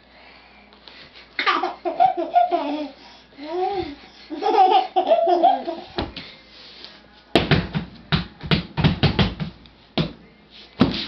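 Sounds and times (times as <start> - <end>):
baby laughing: 1.4 - 6.0.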